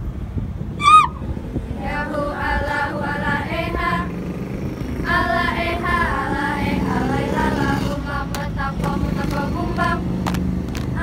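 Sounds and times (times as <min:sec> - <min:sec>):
low steady rumble: 0:00.0 - 0:11.0
women chanting in unison: 0:01.8 - 0:04.1.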